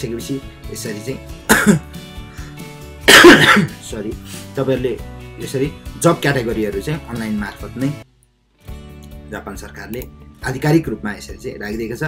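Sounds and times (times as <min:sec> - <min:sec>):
background music: 0:00.0 - 0:12.0
person coughing: 0:01.5 - 0:01.9, 0:03.1 - 0:03.8.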